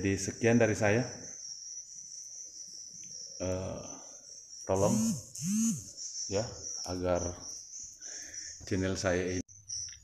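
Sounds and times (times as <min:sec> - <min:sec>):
high-pitched insect trill: 0:00.0 - 0:10.0.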